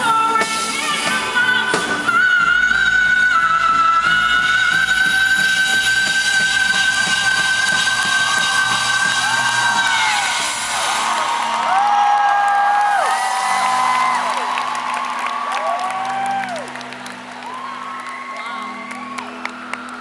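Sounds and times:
live rock band playing: 0.0 - 11.2
crowd whooping and cheering: 6.9 - 20.0.

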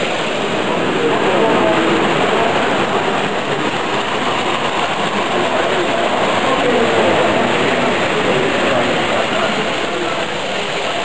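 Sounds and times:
toy train coaches running on track: 0.0 - 11.0.

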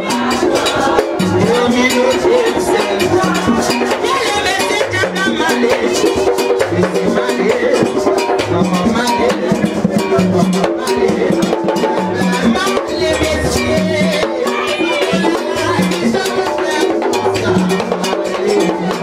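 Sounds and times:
drums beating steady rhythm: 0.0 - 19.0
other percussion: 0.0 - 19.0
people singing: 0.0 - 19.0.

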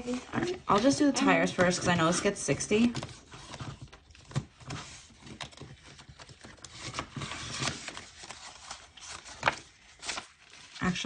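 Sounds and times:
banknotes rustling: 0.0 - 11.0.

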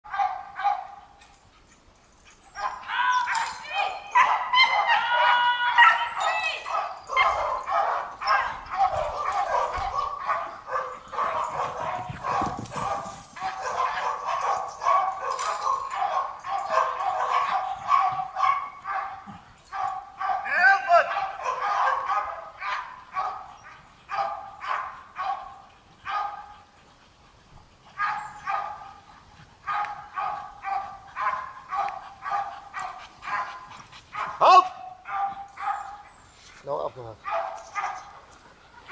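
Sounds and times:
dog barking: 0.1 - 1.0, 3.8 - 26.5, 28.0 - 29.0, 29.6 - 36.0, 37.2 - 38.1
dog yelping: 2.6 - 19.2, 19.8 - 23.4.

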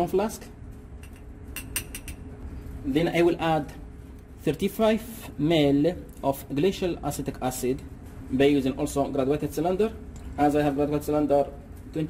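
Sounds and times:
glass clinking: 1.0 - 2.3.

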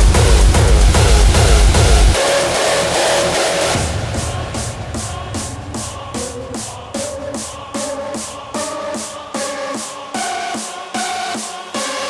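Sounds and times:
heavy kick drum beat: 0.0 - 2.2, 3.7 - 11.8
hardstyle dance music: 0.0 - 12.0
sweeping filtered sounds: 0.1 - 12.0.

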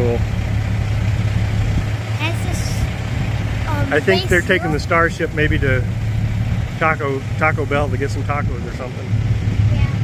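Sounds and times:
low engine drone: 0.0 - 10.0.

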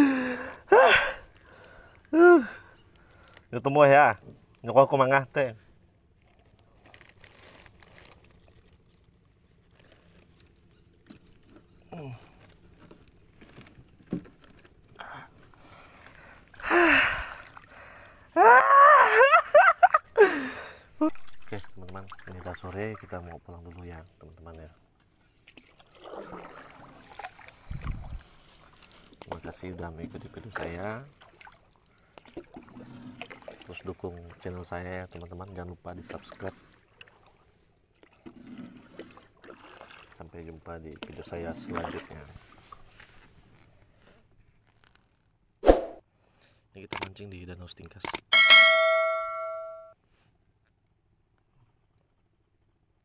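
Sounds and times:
paddle and hull sounds: 0.0 - 45.4, 47.9 - 50.0
small clicks: 46.9 - 47.2, 47.9 - 48.3
bell-like ding: 48.3 - 50.0.

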